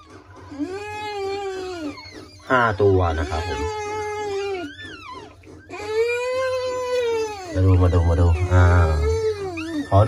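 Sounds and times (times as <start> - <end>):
rat long pitched calls: 0.0 - 10.0
short high squeaks: 0.0 - 10.0.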